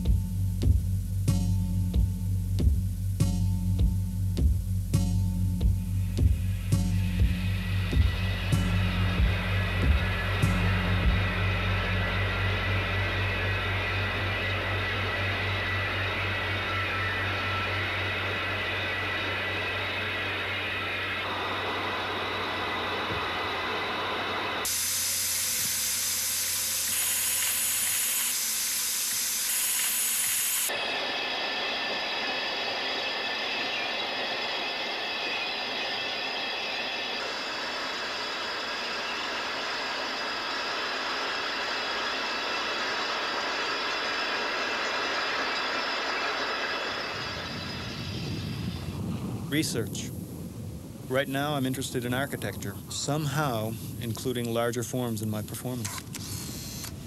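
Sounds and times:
low hum: 0:00.0 - 0:57.0
electronic rushing noise: 0:05.7 - 0:54.4
held high tones: 0:07.9 - 0:48.7.

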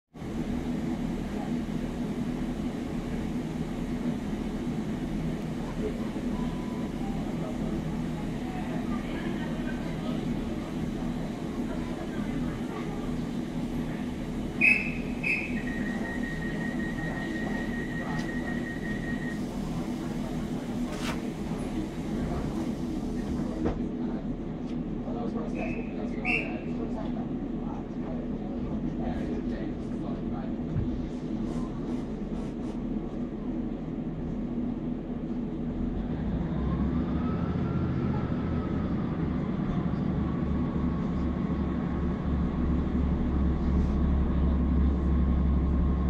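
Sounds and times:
diesel train engine idling: 0:00.2 - 0:46.0.

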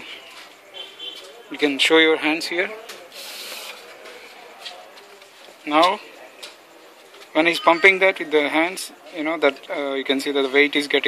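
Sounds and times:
low steady background noise: 0:00.0 - 0:11.0
brief hiss: 0:03.1 - 0:03.9.

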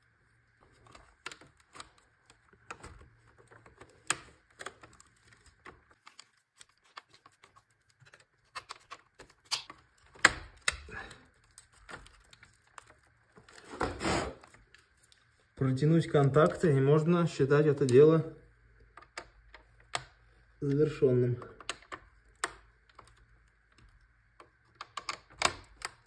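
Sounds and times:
plastic and metal clicks: 0:18.8 - 0:26.0.

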